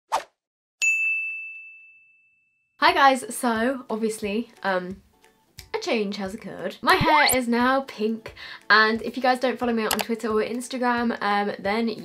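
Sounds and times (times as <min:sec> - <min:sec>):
brief swish: 0:00.1 - 0:00.4
bright bell-like ding: 0:00.8 - 0:02.6.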